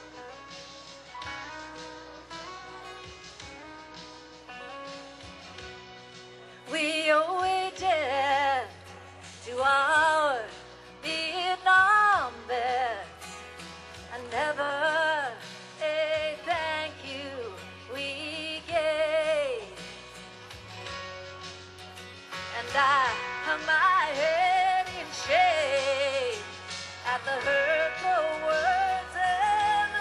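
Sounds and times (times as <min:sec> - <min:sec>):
woman singing country ballad: 0:06.4 - 0:20.6, 0:22.2 - 0:30.0.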